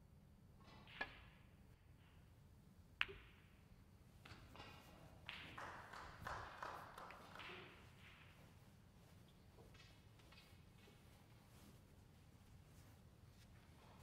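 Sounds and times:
snooker balls clicking: 0:03.0 - 0:08.6, 0:09.3 - 0:11.4
soft irregular sound: 0:07.6 - 0:14.0.

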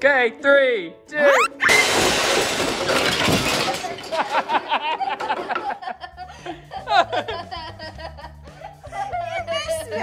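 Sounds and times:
woman laughing: 0:04.1 - 0:10.0.

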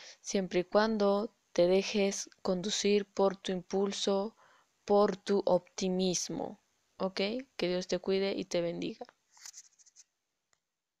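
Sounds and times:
faint rustle: 0:09.3 - 0:10.1.

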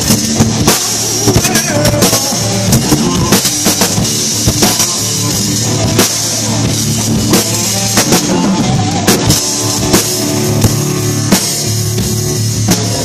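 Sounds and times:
bass guitar: 0:00.0 - 0:13.0
drum kit beat: 0:00.0 - 0:13.0
electric guitar: 0:00.0 - 0:13.0.

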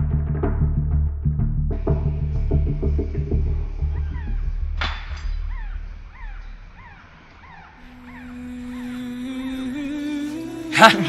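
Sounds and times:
drum-heavy background music: 0:00.0 - 0:05.6.

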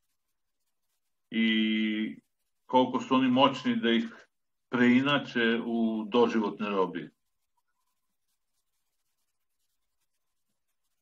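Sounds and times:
speech syllable: 0:01.3 - 0:04.1.

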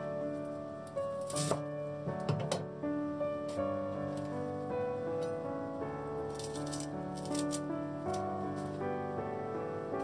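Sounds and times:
gentle piano music: 0:00.0 - 0:10.0.

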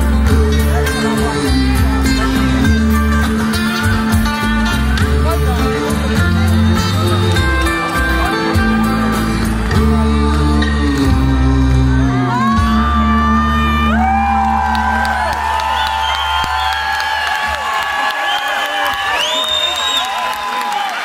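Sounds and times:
audience cheering and whistling: 0:12.4 - 0:21.0.

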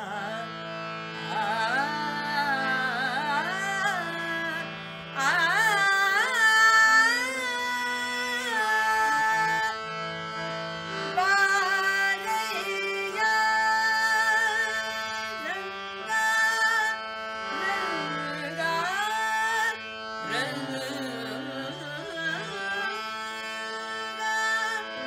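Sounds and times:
harmonium: 0:00.0 - 0:25.0
woman singing: 0:01.3 - 0:09.8, 0:11.2 - 0:25.0.

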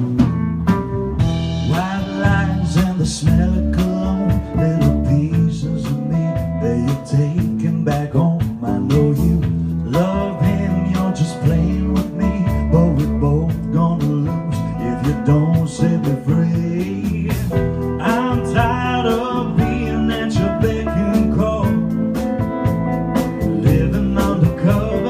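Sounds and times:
band playing jazz-pop: 0:00.0 - 0:25.0
man singing: 0:01.6 - 0:22.3, 0:23.4 - 0:25.0.

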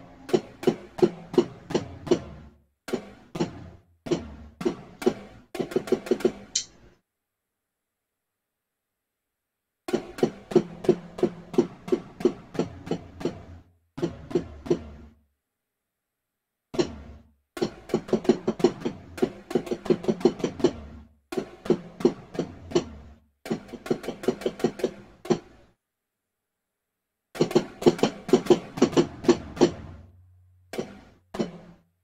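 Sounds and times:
gated tom-tom drum fills: 0:00.0 - 0:06.6, 0:27.4 - 0:31.8.

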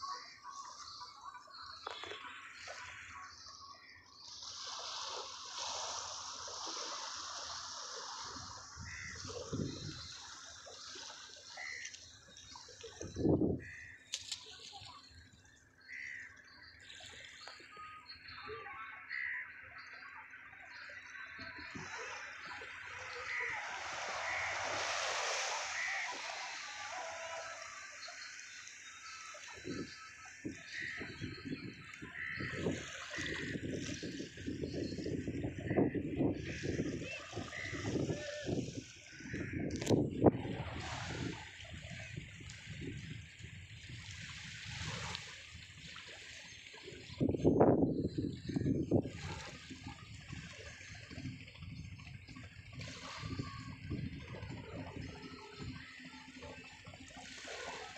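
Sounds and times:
water sloshing and splashing: 0:00.0 - 0:57.9
shallow water sloshing: 0:48.0 - 0:57.9.

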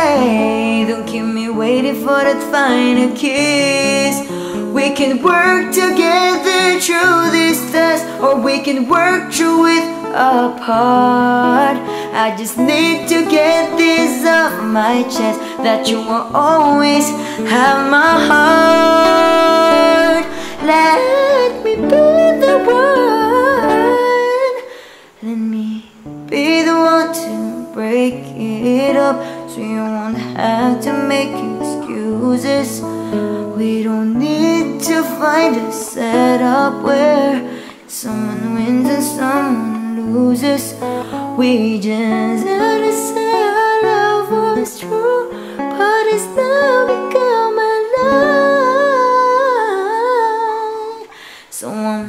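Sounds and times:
man singing wordless run: 0:00.0 - 0:24.6
acoustic guitar chords: 0:00.0 - 0:51.5
man singing a long note: 0:16.9 - 0:24.5
sustained backing chords: 0:17.2 - 0:24.2.

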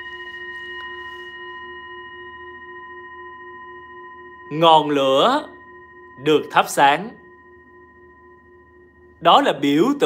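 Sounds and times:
singing bowl ringing: 0:00.0 - 0:10.0.

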